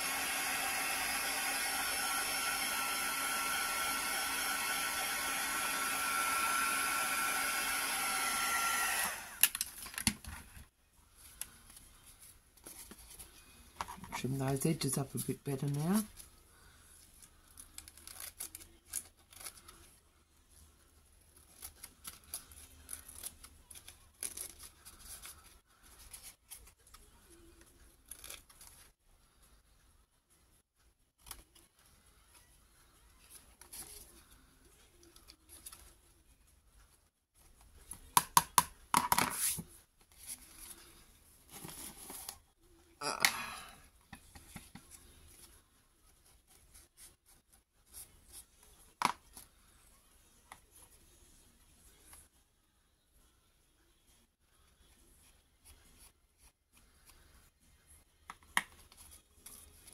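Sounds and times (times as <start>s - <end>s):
paper rustling: 21.2s - 28.9s
scissors snipping paper: 21.4s - 25.5s.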